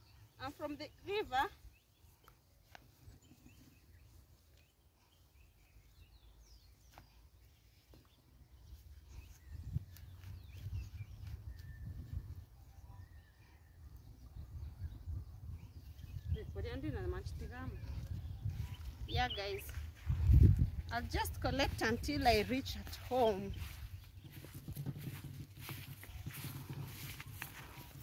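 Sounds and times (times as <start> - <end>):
faint bird chirps: 3.0 - 16.5
wind rumbling on microphone: 8.6 - 28.0.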